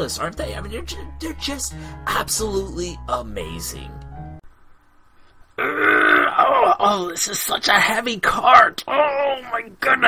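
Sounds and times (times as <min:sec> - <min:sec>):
man groaning with effort: 0:05.6 - 0:06.8.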